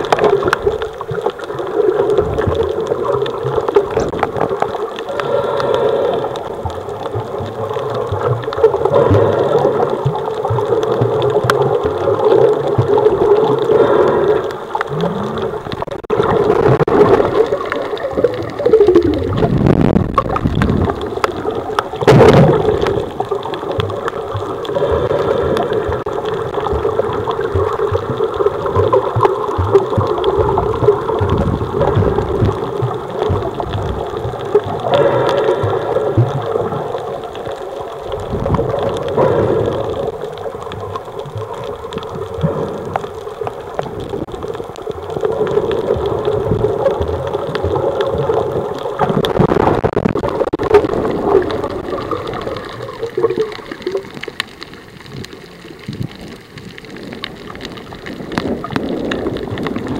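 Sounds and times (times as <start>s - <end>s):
muffled underwater gurgling: 0.0s - 59.9s.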